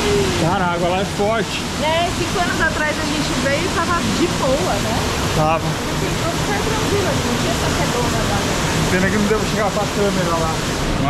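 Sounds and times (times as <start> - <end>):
waterfall pouring into pool: 0.0 - 11.0
man talking: 0.3 - 1.6, 5.3 - 5.8.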